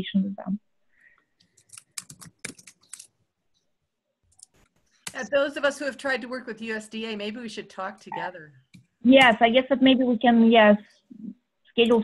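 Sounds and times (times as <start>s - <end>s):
sharp clicks: 1.4s - 3.1s.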